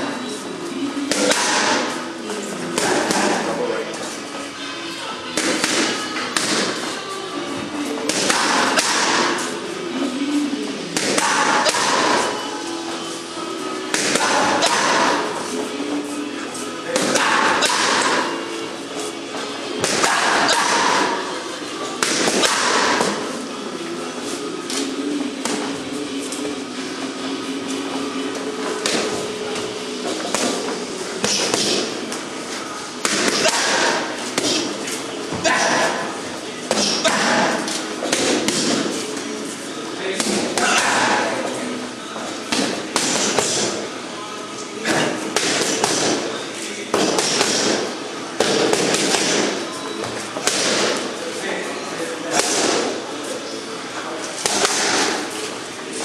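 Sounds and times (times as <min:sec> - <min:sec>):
music: 0:00.0 - 0:46.2
boxing gloves striking mitts: 0:08.1 - 0:09.5, 0:11.0 - 0:12.3, 0:19.8 - 0:21.2, 0:22.0 - 0:23.3, 0:30.0 - 0:32.1, 0:33.0 - 0:36.0, 0:36.7 - 0:39.0, 0:42.5 - 0:43.8, 0:44.8 - 0:46.3, 0:46.9 - 0:49.6, 0:50.4 - 0:51.1, 0:54.4 - 0:55.3.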